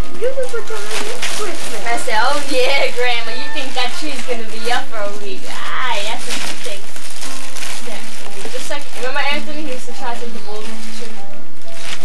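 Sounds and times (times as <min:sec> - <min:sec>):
voices talking to a baby: 0:00.0 - 0:11.4
tape hiss: 0:00.0 - 0:12.0.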